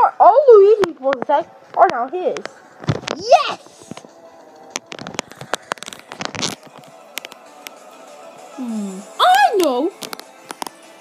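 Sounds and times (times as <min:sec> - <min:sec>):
faint background music: 0:00.0 - 0:11.0
plush toys and camera handling: 0:04.7 - 0:07.4.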